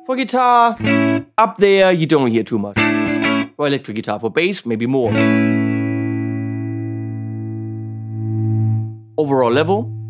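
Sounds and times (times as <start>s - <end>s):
electric guitar chord ringing: 0.8s - 1.4s, 2.8s - 3.5s, 5.1s - 10.0s.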